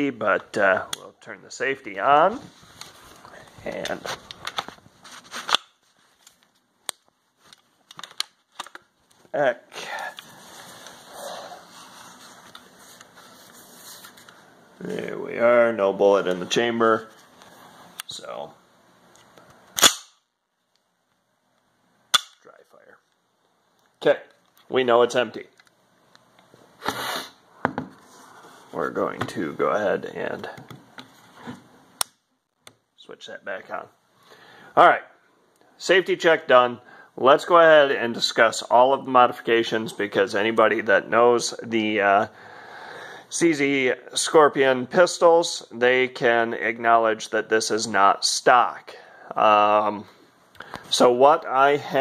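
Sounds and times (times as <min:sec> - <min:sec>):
pistol action metallic clack: 0:22.1 - 0:22.4.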